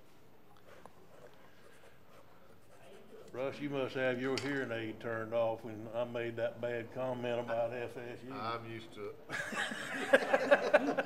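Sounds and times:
faint rustling of papers: 0:00.0 - 0:05.9.

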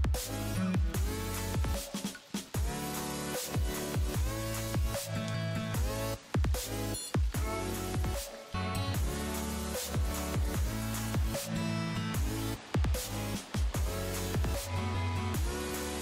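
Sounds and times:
dubstep electronic music: 0:00.0 - 0:16.0.

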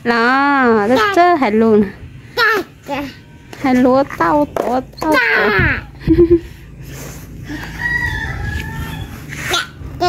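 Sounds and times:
rooster crowing: 0:07.4 - 0:09.4.

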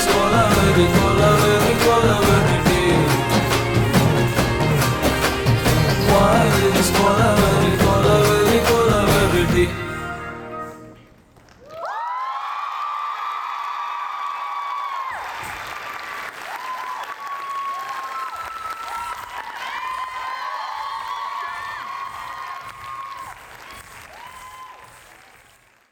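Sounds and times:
audience applauding: 0:00.0 - 0:09.0, 0:11.3 - 0:25.9
whooping cheers: 0:11.6 - 0:25.4.

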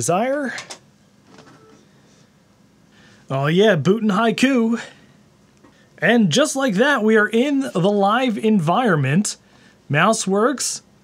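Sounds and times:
computer fans whirring: 0:00.0 - 0:11.0.

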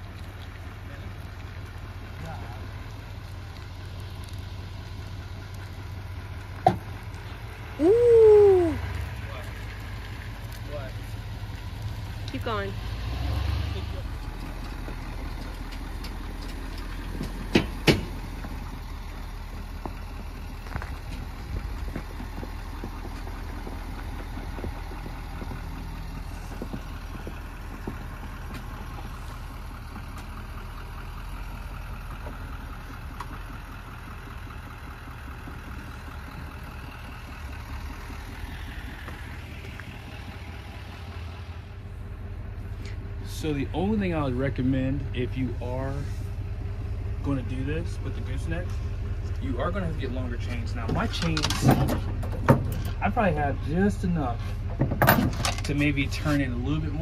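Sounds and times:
diesel engine running: 0:00.0 - 0:57.0.

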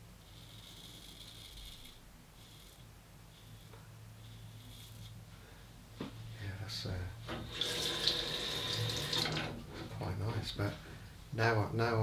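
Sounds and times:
razor scraping stubble: 0:00.2 - 0:05.2.

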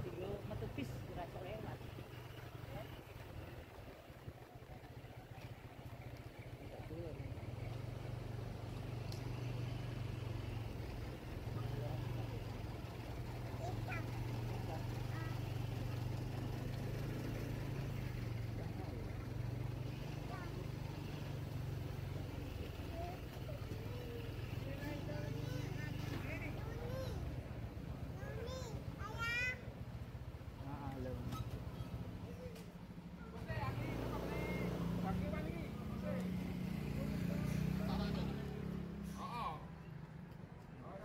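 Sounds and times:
bus engine idling: 0:00.0 - 0:36.8.

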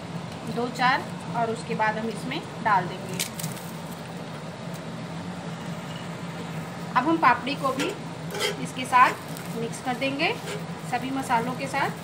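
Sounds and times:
steady low hum: 0:00.0 - 0:12.0
spatula clicking and scraping: 0:07.8 - 0:09.5.

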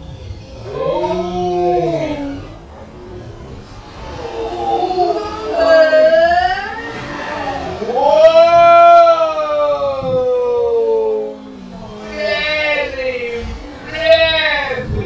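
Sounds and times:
people yelling: 0:00.0 - 0:15.0.

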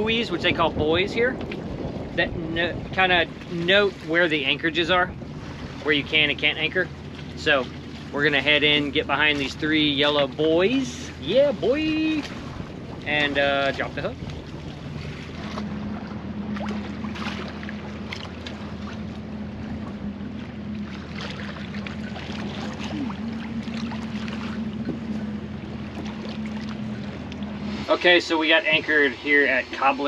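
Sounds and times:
steady low hum: 0:00.0 - 0:30.0
water noise: 0:00.0 - 0:30.0
wind on microphone: 0:00.0 - 0:30.0.

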